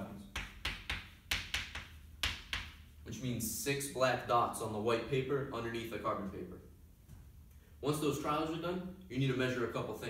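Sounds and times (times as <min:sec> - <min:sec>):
chalk scratching and tapping on blackboard: 0:00.3 - 0:02.9.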